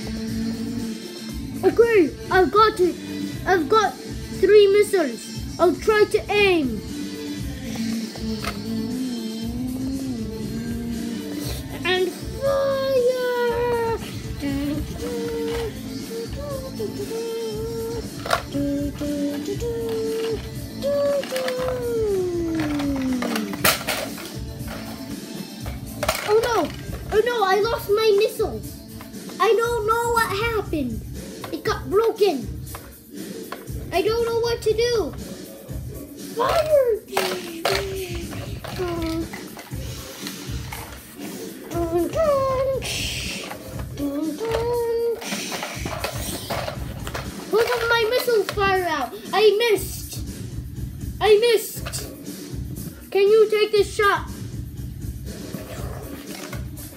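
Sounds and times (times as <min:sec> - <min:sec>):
child humming: 0:00.0 - 0:01.2, 0:07.6 - 0:23.7, 0:37.1 - 0:40.6, 0:41.4 - 0:46.6
music playing: 0:00.0 - 0:56.9.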